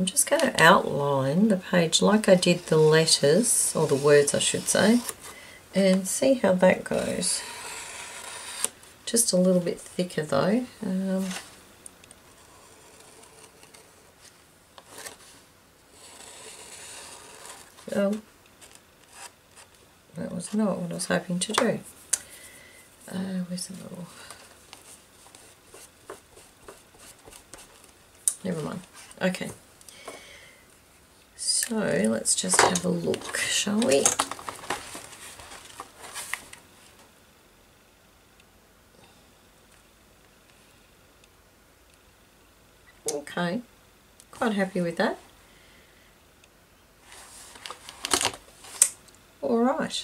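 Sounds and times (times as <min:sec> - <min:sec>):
paper rustling: 0:12.3 - 0:15.4, 0:24.2 - 0:29.4, 0:32.5 - 0:36.6
pen scratching on paper: 0:15.9 - 0:17.7, 0:25.3 - 0:27.8.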